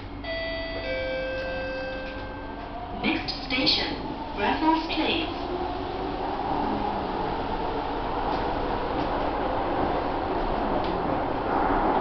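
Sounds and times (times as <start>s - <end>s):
train running hum: 0.0s - 12.0s
two-note falling chime: 0.2s - 2.6s.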